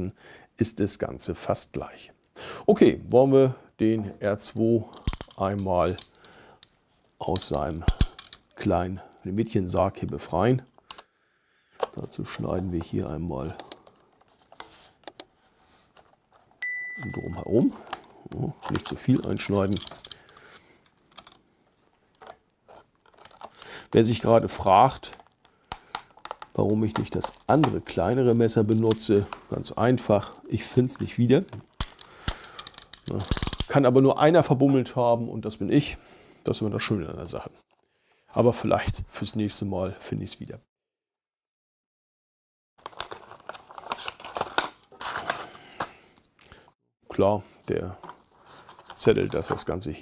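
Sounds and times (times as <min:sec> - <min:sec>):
plastic packaging crackling: 0:21.9 - 0:24.2, 0:42.8 - 0:45.9.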